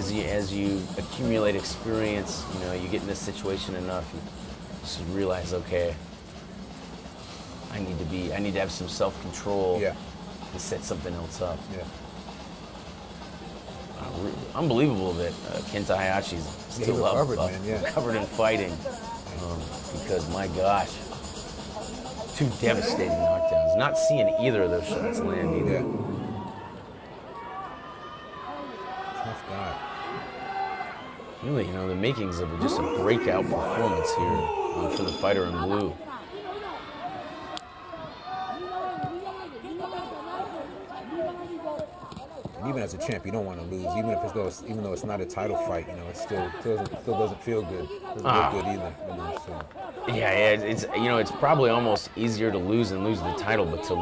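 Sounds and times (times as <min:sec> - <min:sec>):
voices calling out in a hall: 0:21.3 - 0:27.8, 0:30.4 - 0:42.1.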